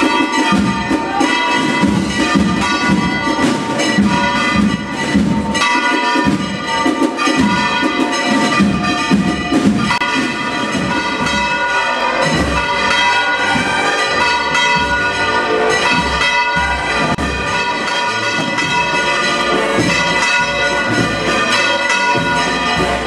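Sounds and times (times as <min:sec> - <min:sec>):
church bells pealing: 0:00.0 - 0:23.0.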